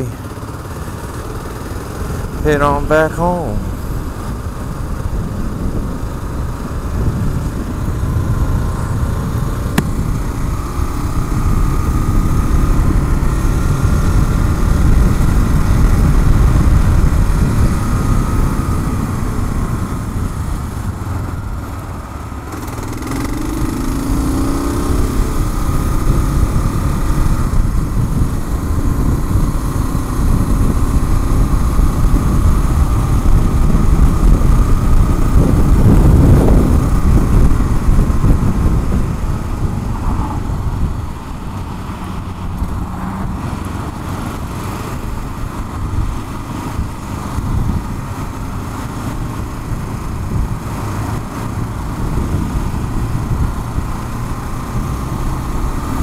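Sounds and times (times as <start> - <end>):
motorcycle engine running: 0.0 - 56.0
wind noise on microphone: 3.6 - 21.8, 22.5 - 56.0.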